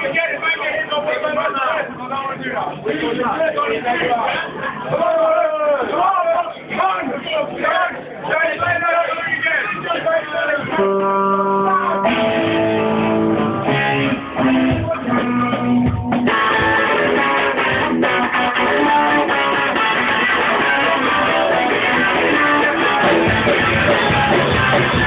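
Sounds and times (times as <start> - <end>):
rock band playing live: 10.6 - 25.0
guitars ringing sustained chords: 10.7 - 25.0.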